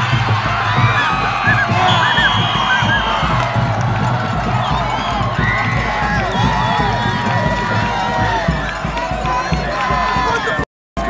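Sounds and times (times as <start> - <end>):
crowd cheering and shouting: 0.0 - 10.7.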